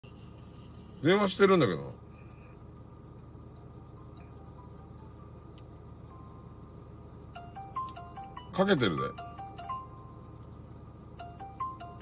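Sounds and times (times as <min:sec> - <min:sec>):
phone ringing chiming melody: 0:07.3 - 0:10.4, 0:11.2 - 0:12.0.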